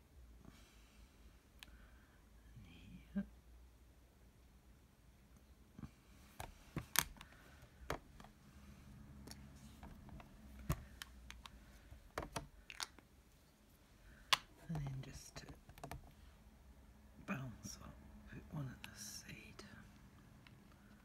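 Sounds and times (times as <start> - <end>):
crafting tools clicking and tapping: 9.3 - 13.0.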